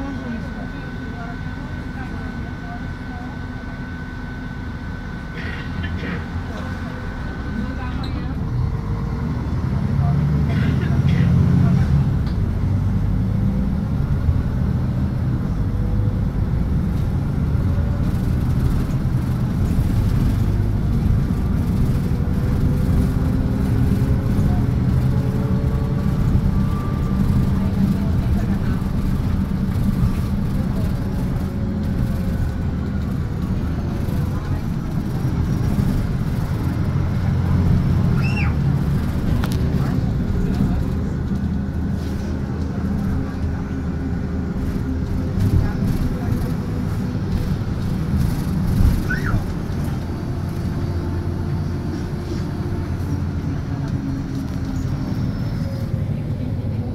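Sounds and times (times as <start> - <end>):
bus engine rumble: 0.0 - 56.9
road noise: 0.0 - 56.9.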